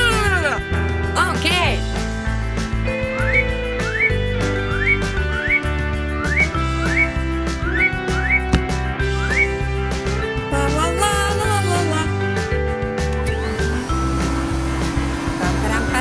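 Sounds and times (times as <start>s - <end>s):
upbeat cartoon music: 0.0s - 16.0s.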